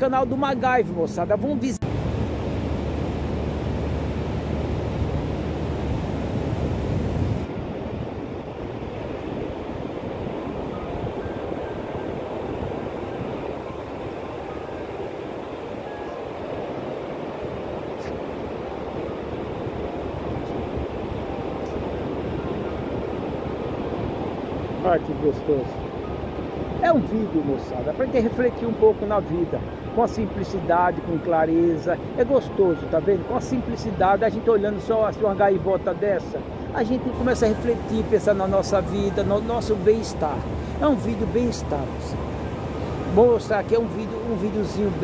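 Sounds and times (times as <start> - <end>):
surf washing: 0.0 - 45.0
wind rumbling on microphone: 0.0 - 45.0.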